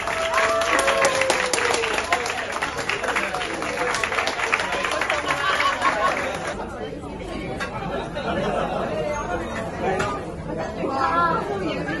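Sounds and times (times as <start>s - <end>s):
overlapping voices: 0.0s - 6.6s
people clapping: 0.0s - 6.6s.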